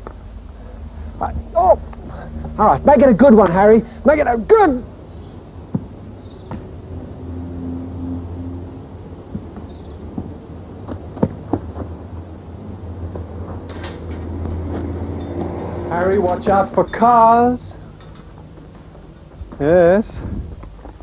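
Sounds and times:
car engine humming: 0.0s - 21.0s.

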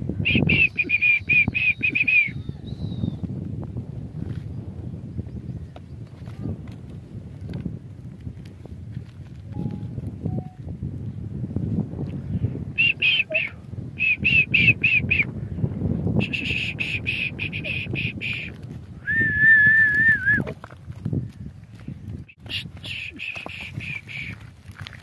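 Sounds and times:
person whistling chirps: 0.3s - 2.4s, 16.2s - 20.5s, 22.5s - 24.3s.

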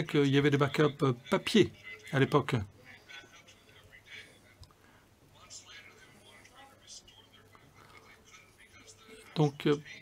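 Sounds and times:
faint man speaking: 0.0s - 10.0s.

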